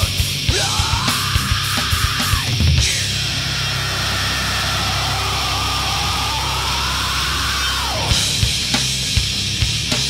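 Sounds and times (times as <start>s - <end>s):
distorted guitar and bass chord: 0.0s - 10.0s
noisy high whine: 0.8s - 9.2s.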